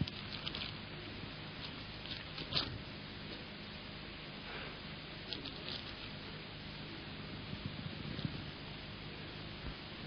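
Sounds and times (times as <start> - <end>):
faint steady hiss and hum: 0.0 - 10.0.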